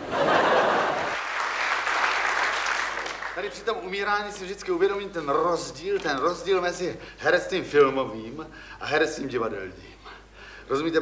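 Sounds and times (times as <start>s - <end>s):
audience applause: 0.0s - 3.7s.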